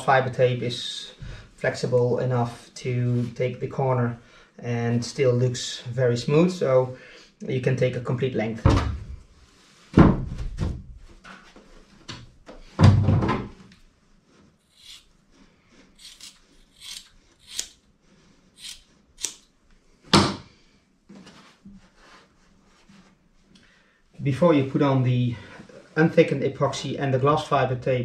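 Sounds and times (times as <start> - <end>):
scissors snipping cloth: 16.0 - 17.8, 18.6 - 19.4.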